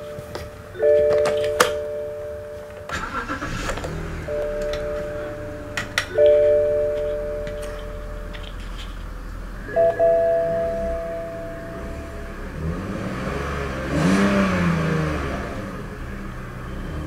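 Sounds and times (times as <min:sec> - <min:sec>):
dashboard chime tones: 0:00.0 - 0:03.5, 0:04.1 - 0:13.4
car engine cranking and idling: 0:00.0 - 0:17.0.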